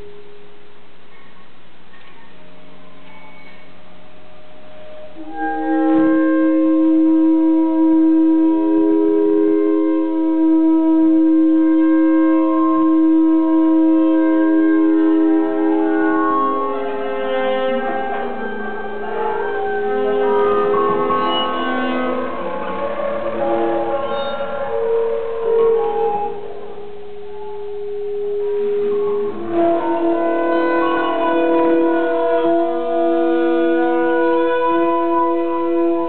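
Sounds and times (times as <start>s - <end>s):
free-improvised woodwind and electronics: 0.0s - 36.0s.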